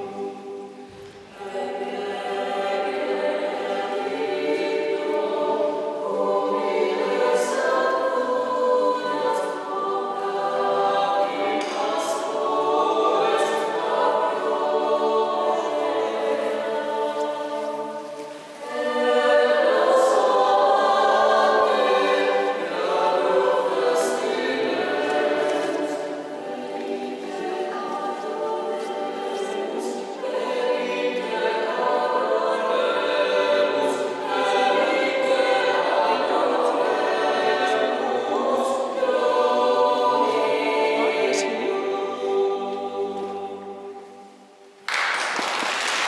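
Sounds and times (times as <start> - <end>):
choir singing sustained chords: 0.0 - 44.8.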